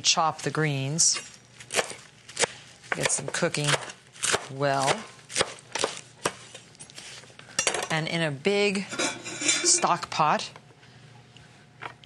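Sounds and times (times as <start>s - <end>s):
knife chopping on wooden board: 1.7s - 6.4s.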